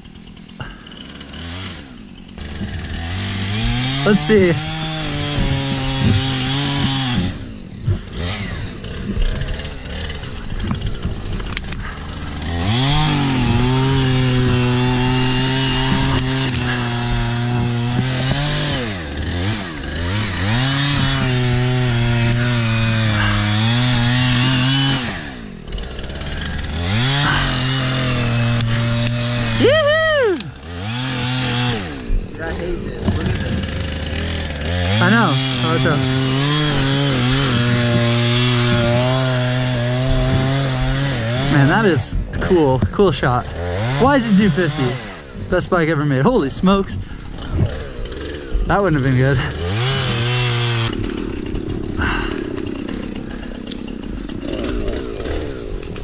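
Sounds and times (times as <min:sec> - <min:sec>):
chainsaw cutting logs: 0:00.0 - 0:56.0.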